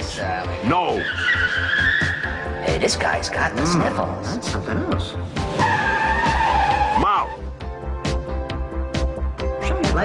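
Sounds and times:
cartoon background music: 0.0 - 8.2.

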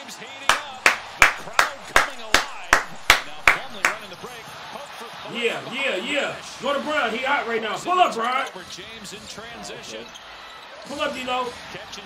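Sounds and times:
sharp hand claps: 0.5 - 4.1.

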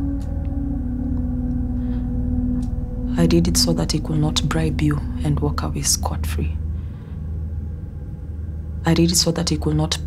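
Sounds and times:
dark ambient drone: 0.0 - 10.0
deep steady rumble: 0.0 - 10.0.

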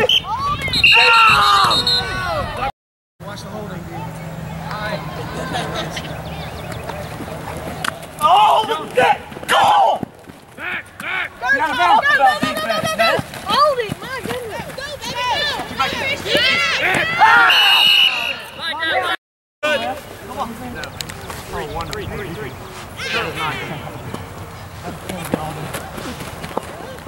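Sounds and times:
men shouting: 8.2 - 19.8, 23.0 - 24.0.

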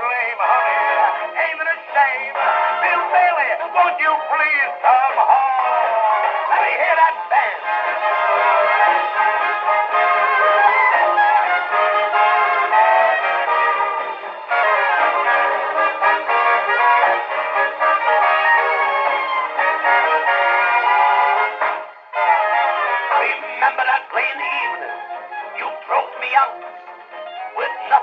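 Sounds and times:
orchestra on a phonograph: 0.0 - 28.0.

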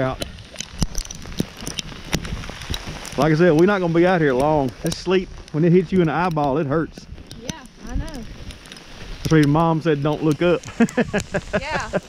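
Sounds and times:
footsteps on sleet: 0.0 - 12.0
sleet pellets ticking: 0.0 - 12.0.

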